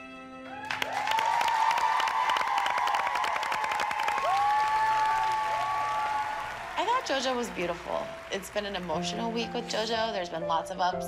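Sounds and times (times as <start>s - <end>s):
soft slow music: 0.0s - 1.5s, 8.0s - 11.0s
whooping cheers: 0.5s - 7.4s
audience applause: 0.5s - 9.3s.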